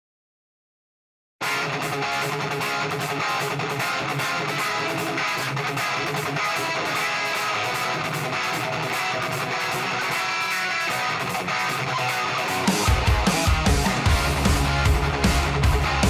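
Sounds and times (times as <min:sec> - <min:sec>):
electric guitar hard-rock riff: 0:01.4 - 0:16.0.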